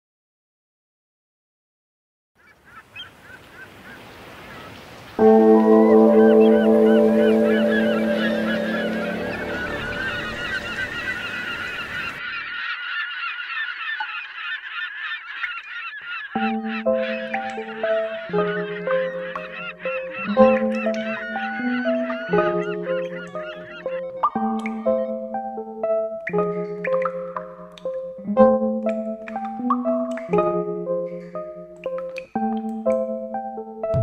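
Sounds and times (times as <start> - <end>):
birds honking: 2.4 - 32.1
musical notes: 5.2 - 12.2, 16.4 - 34.0
sustained musical chord: 5.2 - 12.2, 16.4 - 34.0.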